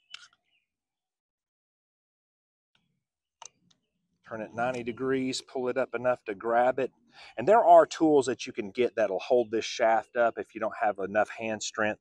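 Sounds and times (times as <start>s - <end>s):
faint short clicks: 2.8s - 3.9s.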